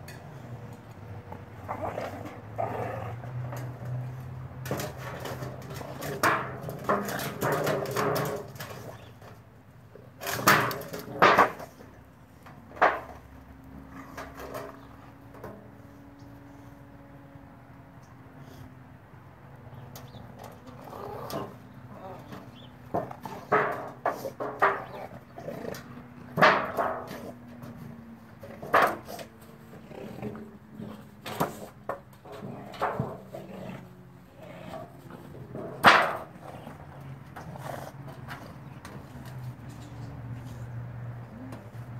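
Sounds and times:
dog growling: 1.6 - 3.5, 29.7 - 31.2, 32.3 - 38.7.

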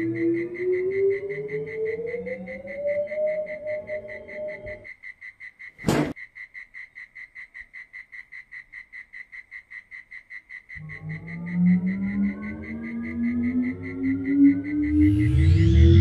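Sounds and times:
low spaceship hum rising in pitch: 0.0 - 4.8, 10.8 - 16.0
night-time chirping: 0.0 - 16.0.

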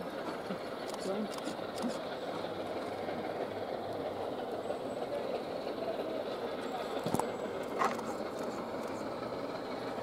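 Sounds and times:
steam train passing: 0.0 - 10.0.

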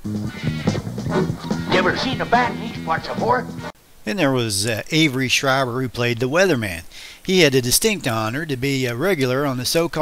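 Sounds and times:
music with low notes: 0.0 - 3.8
yelping vocal cries: 0.3 - 3.8.

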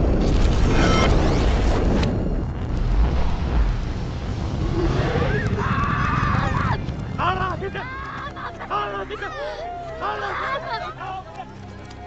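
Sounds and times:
low rumble: 0.0 - 8.5.

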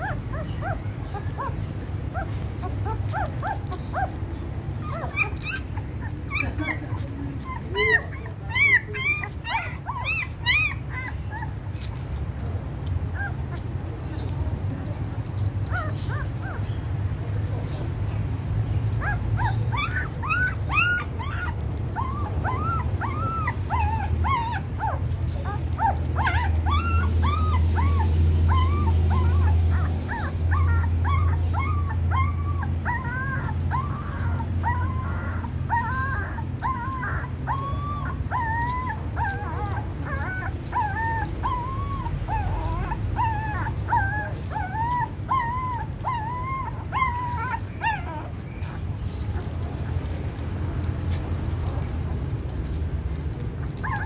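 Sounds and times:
puppies squeaking and whimpering: 0.0 - 54.0.

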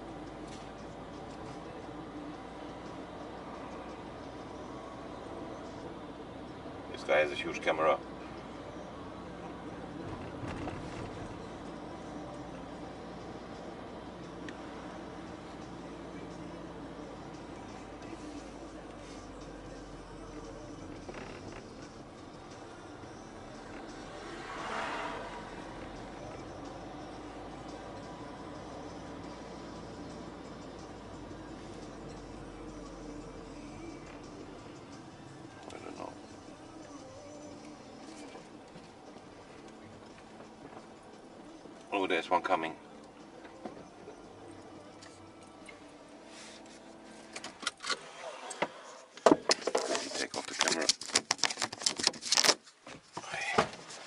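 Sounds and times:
van passing by: 0.0 - 49.2
car road and engine noise: 0.0 - 54.0.

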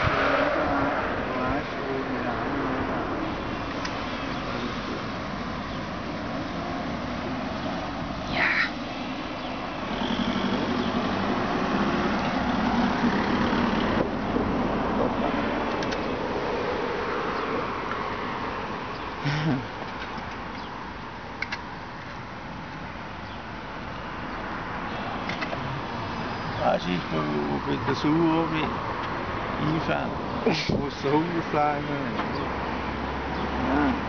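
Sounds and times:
car engine passing: 0.0 - 19.6
road traffic hum: 0.0 - 34.0.

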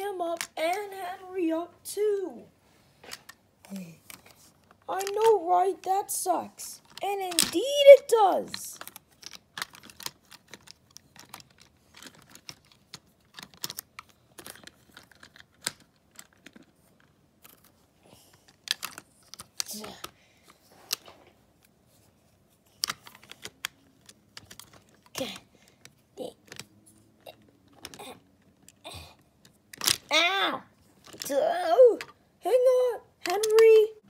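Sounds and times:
plastic toy trains clacking: 4.9 - 16.8, 33.2 - 33.9.

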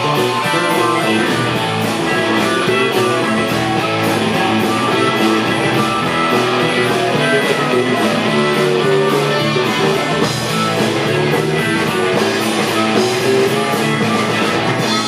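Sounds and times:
blues harmonica: 0.0 - 15.0
rhythm and blues band playing: 0.0 - 15.0.

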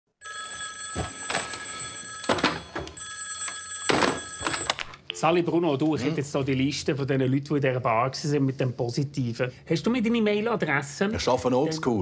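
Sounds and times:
telephone bell ringing: 0.2 - 5.0.

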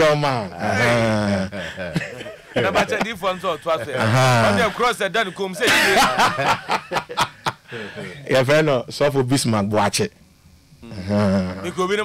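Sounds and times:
man laughing: 0.6 - 8.0.

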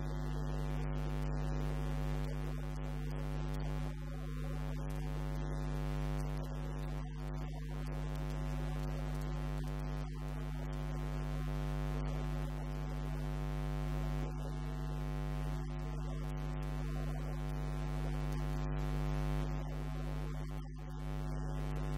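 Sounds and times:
electrical mains hum with buzz: 0.0 - 21.9.

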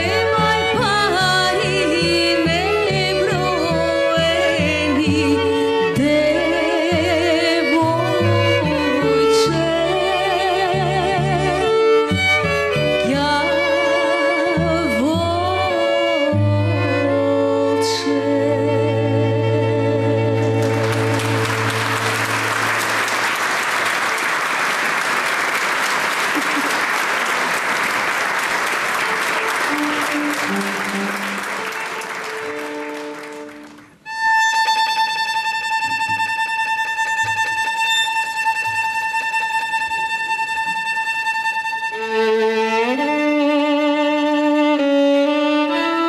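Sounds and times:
audience applauding: 20.4 - 34.0.

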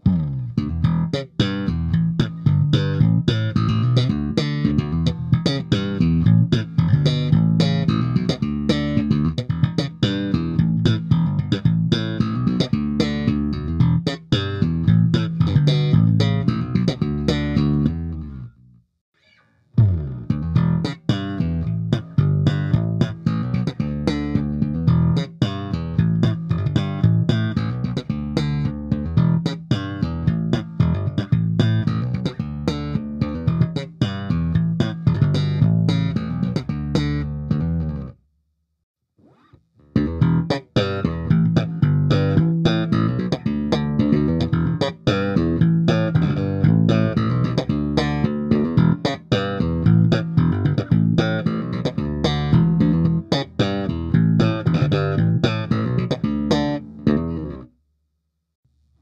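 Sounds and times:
slap electric bass: 0.0 - 18.7, 19.8 - 38.2, 39.9 - 57.7.

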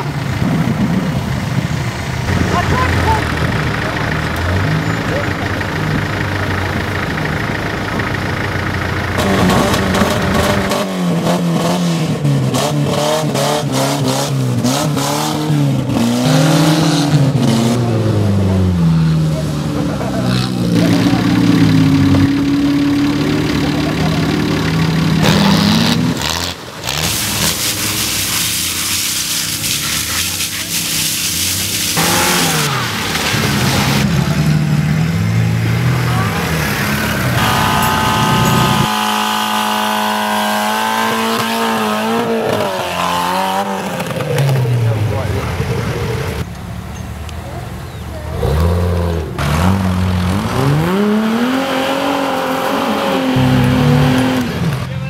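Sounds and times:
off-road engines revving: 0.0 - 55.0.

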